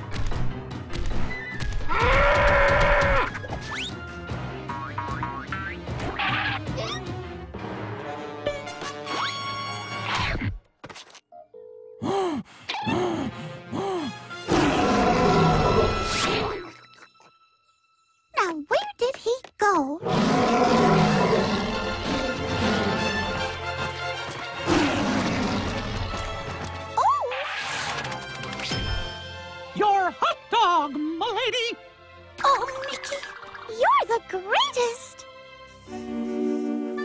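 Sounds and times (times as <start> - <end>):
cartoon background music: 0.0 - 10.6, 11.3 - 37.0
cartoon lion roaring: 14.5 - 16.6, 20.0 - 23.4, 24.6 - 26.0.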